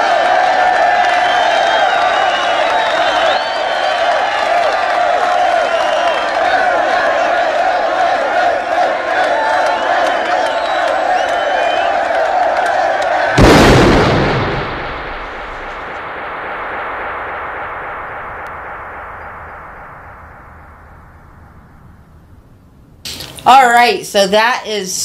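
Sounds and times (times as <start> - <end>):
large crowd cheering: 0.0 - 15.6
loud gunshot with echo: 13.4 - 20.6.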